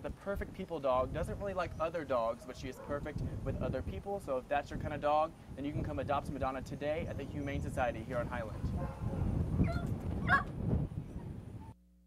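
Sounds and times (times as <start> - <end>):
wind rumble on microphone: 0.0 - 11.8.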